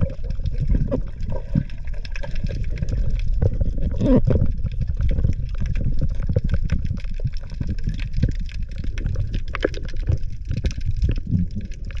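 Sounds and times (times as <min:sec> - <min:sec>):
muffled underwater rumble: 0:00.0 - 0:12.0
sharp underwater clicks and crackles: 0:00.0 - 0:12.0.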